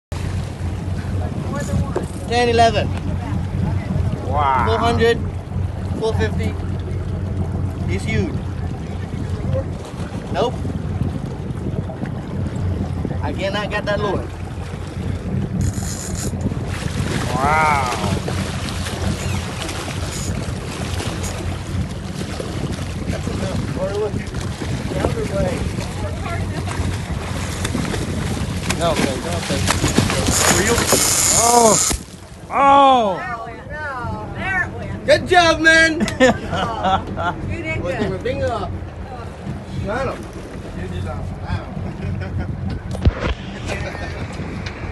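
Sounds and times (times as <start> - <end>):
water splashing: 0.1 - 36.7
boat engine rumbling: 0.1 - 44.9
wind buffeting microphone: 0.1 - 44.9.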